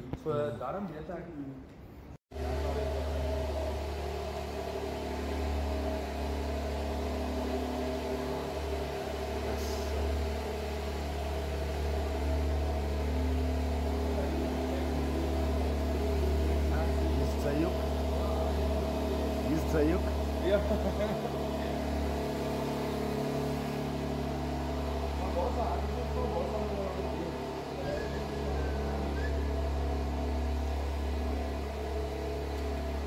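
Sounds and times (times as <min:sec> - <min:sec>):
low mechanical hum: 0:00.0 - 0:33.0.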